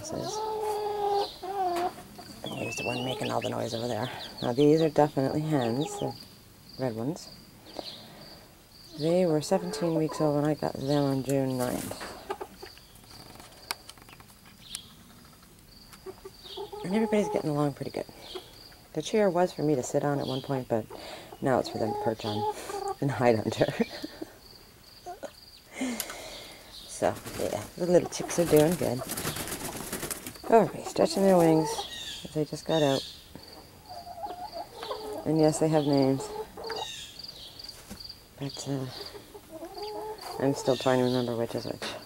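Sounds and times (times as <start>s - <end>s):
hens clucking softly: 0.0s - 6.2s, 9.0s - 13.4s, 15.0s - 18.8s, 20.8s - 24.4s, 27.8s - 32.0s, 32.8s - 37.0s, 38.8s - 41.0s
chickens low wavering call: 0.2s - 4.7s, 5.4s - 6.2s, 33.5s - 37.2s, 39.0s - 40.7s.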